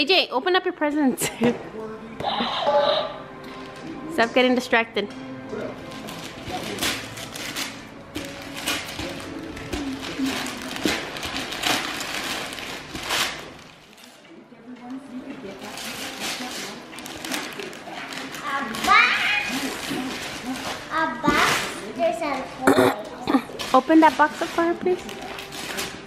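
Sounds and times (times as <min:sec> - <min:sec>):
wrapping paper tearing: 0:05.8 - 0:14.2, 0:15.5 - 0:22.0, 0:23.5 - 0:26.0.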